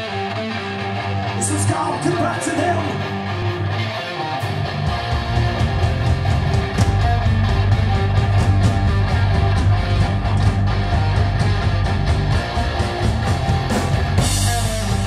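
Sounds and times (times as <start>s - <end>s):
heavy rock electric guitar riff: 0.0s - 15.0s.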